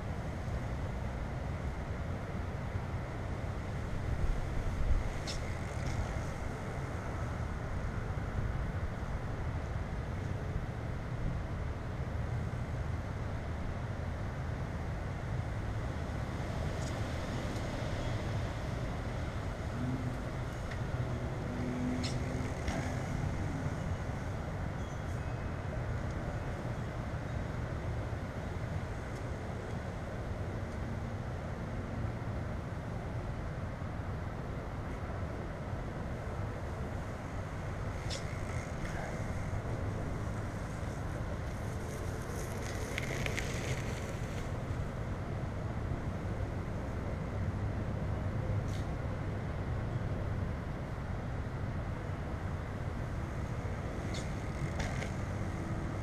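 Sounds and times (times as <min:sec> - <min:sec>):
low rumbling background noise: 0:00.0 - 0:56.0.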